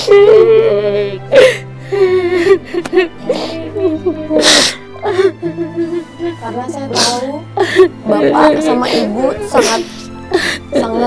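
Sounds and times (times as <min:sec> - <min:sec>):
soft sad background music: 0:00.0 - 0:11.0
woman sobbing: 0:00.0 - 0:11.0
breathy sniffs: 0:06.9 - 0:07.3.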